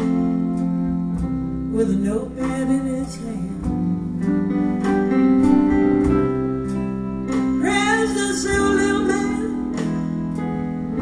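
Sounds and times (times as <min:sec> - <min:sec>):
live band playing slow song: 0:00.0 - 0:11.0.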